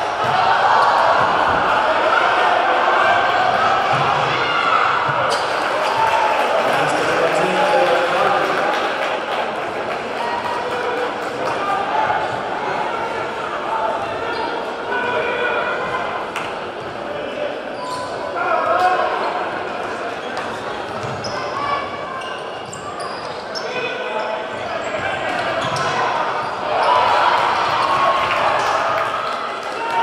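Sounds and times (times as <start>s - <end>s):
crowd chatter echoing: 0.0s - 30.0s
sneaker squeaks: 5.1s - 6.1s, 14.2s - 14.6s, 17.7s - 18.2s, 20.2s - 27.0s.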